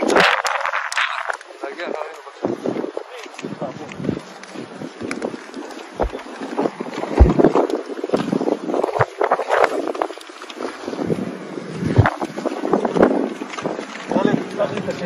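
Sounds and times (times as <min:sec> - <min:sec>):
wind buffeting microphone: 0:00.0 - 0:15.0
footsteps on sand: 0:01.4 - 0:15.0
low thumps: 0:05.9 - 0:10.1, 0:11.0 - 0:15.0.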